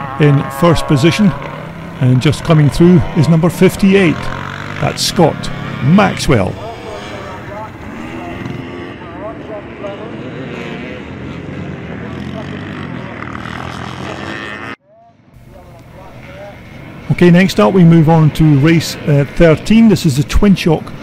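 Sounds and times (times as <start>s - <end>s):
motocross motorcycle engines revving: 0.0s - 14.8s, 15.4s - 21.0s.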